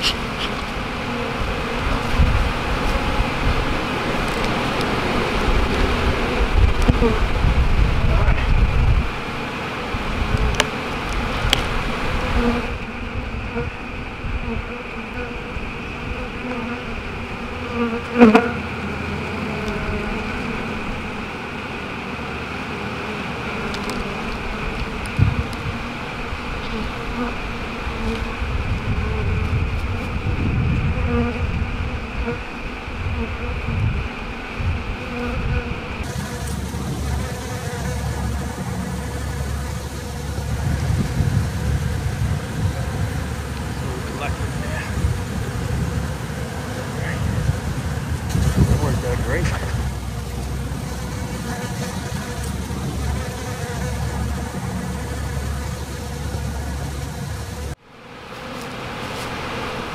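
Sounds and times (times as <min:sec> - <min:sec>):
bees buzzing: 0:00.0 - 0:59.9.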